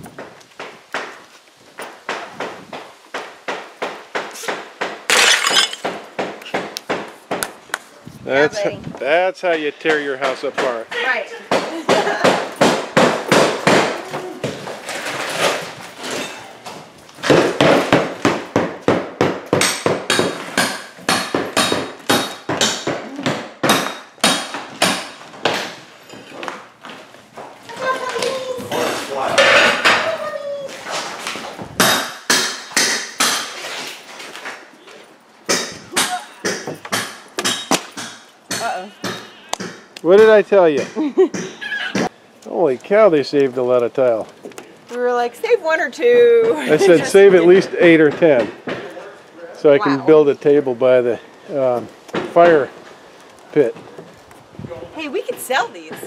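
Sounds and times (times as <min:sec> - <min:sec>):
hammer breaking floor tiles: 0:05.1 - 0:06.0.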